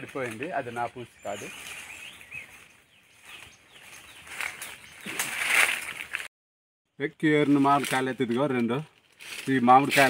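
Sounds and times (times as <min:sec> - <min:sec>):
leaves and branches rustling: 0:00.0 - 0:06.3, 0:07.3 - 0:10.0.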